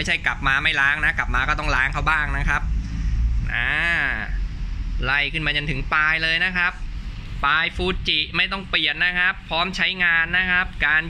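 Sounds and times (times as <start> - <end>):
low background rumble: 0.0 - 11.0
man's drawn-out vocal sound: 3.2 - 4.6.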